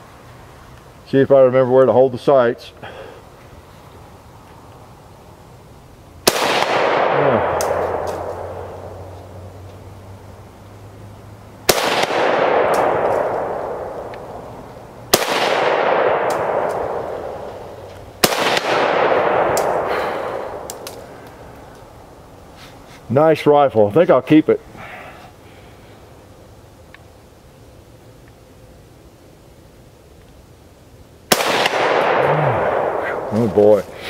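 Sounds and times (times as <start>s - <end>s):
rifle shots echoing: 6.2s - 9.2s, 11.7s - 21.3s, 31.3s - 33.9s.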